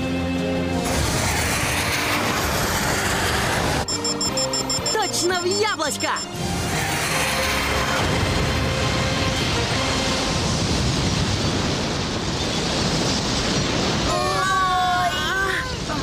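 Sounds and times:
background music: 0.0 - 1.4, 3.9 - 10.4.

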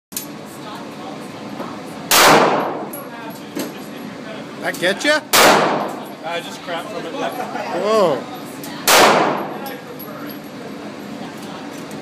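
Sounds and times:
handgun shot echoing indoors: 2.1 - 3.0, 5.3 - 6.1, 8.8 - 9.6.

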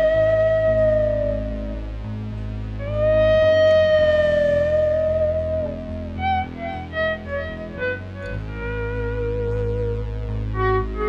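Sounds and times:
electric guitar sustained note: 0.0 - 11.0.

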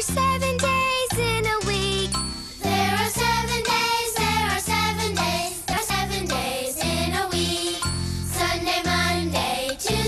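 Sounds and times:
voices singing children's song: 0.0 - 10.0.

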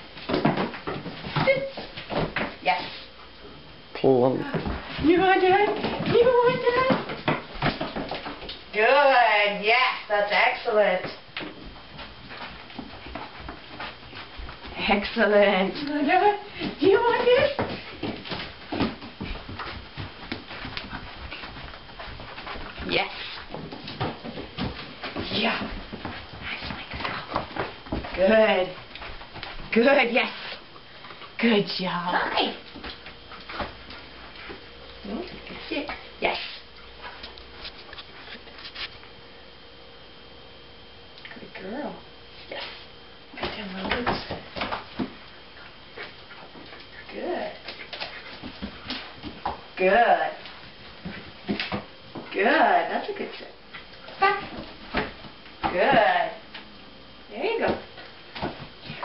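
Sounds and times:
dog scuffling on floor: 0.1 - 3.3, 4.5 - 39.2, 42.3 - 56.6.

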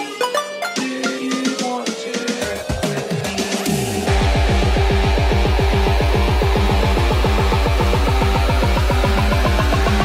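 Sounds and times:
psytrance electronic music: 0.0 - 10.0.

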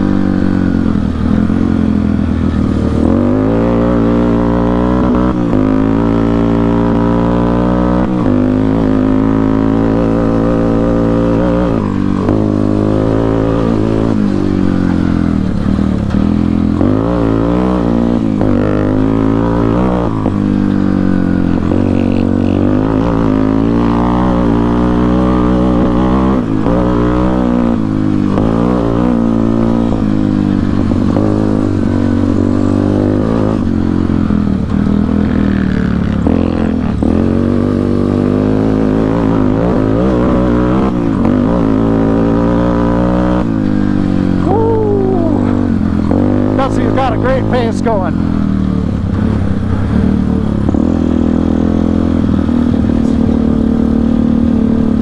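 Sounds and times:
atv engine revving: 0.0 - 55.0.

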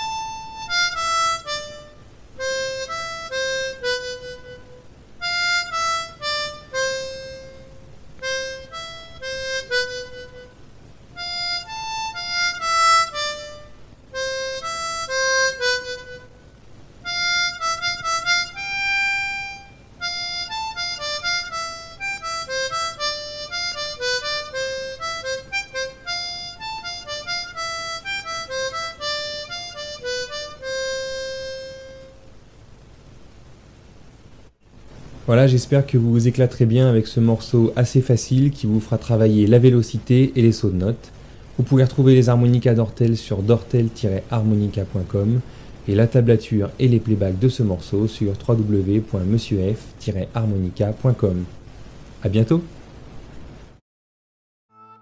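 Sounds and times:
harmonica melody: 0.0 - 32.4, 54.7 - 55.0.

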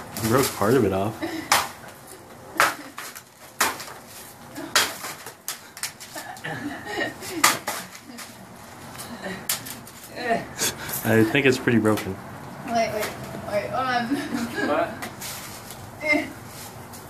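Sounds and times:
pinata being whacked: 1.5 - 1.9, 2.6 - 4.0, 4.6 - 6.0
people laughing: 6.1 - 8.3, 14.0 - 15.0.

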